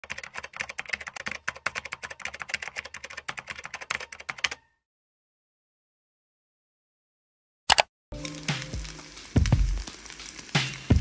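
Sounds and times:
rapid keyboard typing clicks: 0.0 - 4.6.

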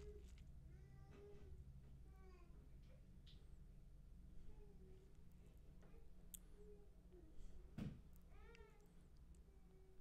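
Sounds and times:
faint high-pitched cry: 0.0 - 2.7, 8.3 - 8.9.

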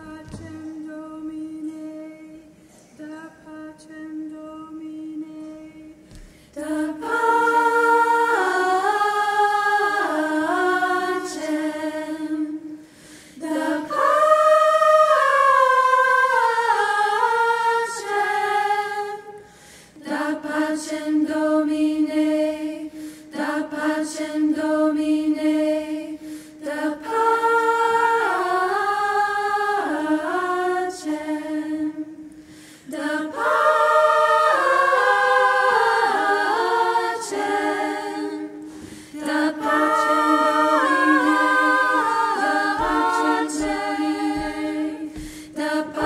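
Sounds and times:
women's choir singing a cappella: 0.0 - 46.0.

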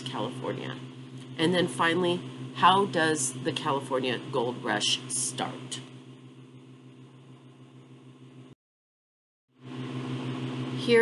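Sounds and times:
low electrical hum: 0.0 - 8.6.

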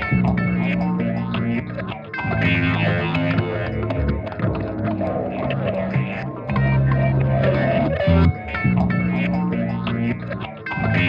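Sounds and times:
electric guitar through effects: 0.0 - 11.0
looped guitar part: 0.0 - 11.0.

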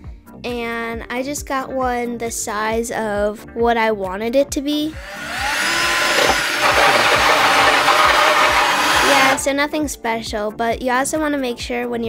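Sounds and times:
drill hole saw cutting wood: 4.9 - 9.5.

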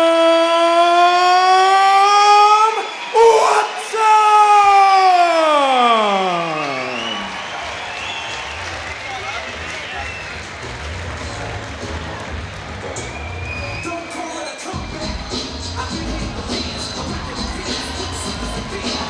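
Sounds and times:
crowd cheering and applause: 0.0 - 19.0
walkout music with low bass: 9.6 - 13.9, 14.7 - 19.0.

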